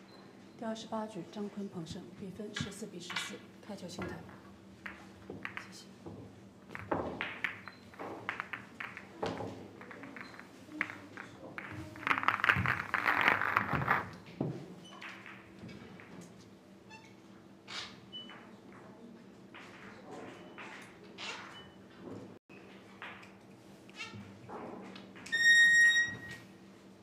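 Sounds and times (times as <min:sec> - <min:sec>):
pool balls clicking: 0:04.0 - 0:16.4.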